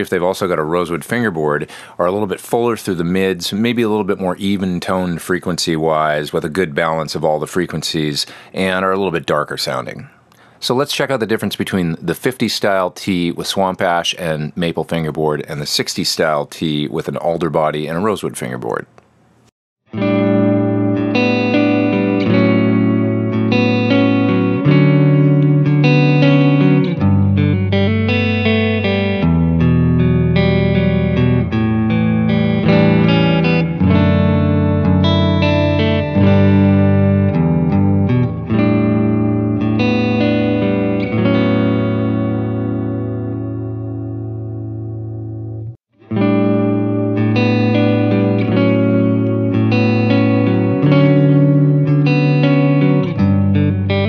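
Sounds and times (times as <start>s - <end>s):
electric guitar through an amp: 19.9s - 54.0s.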